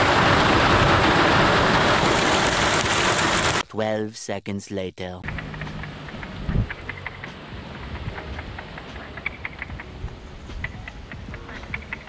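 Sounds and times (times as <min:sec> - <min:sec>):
wind rumble on microphone: 0:06.1 - 0:12.0.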